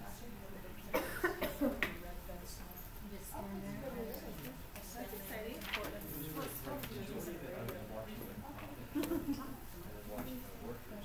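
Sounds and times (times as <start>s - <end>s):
person coughing: 0.9s - 1.7s.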